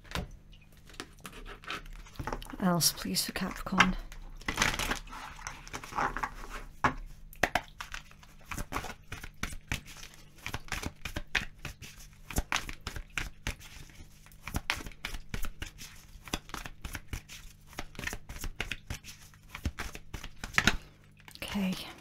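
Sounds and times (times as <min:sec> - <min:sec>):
cards being shuffled: 0:07.4 - 0:20.8.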